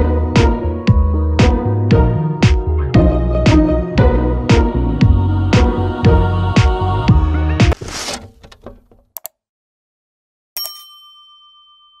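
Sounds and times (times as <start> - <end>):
notification bell ding: 10.6 - 12.0.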